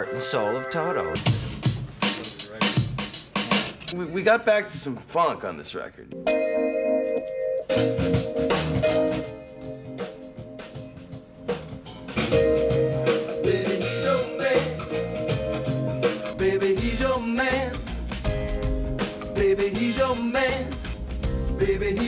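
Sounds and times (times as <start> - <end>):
funk rock band playing: 0.0 - 4.0, 6.1 - 22.0
steady drum beat: 1.1 - 4.1, 7.7 - 22.0
person singing: 13.0 - 18.5, 19.2 - 22.0.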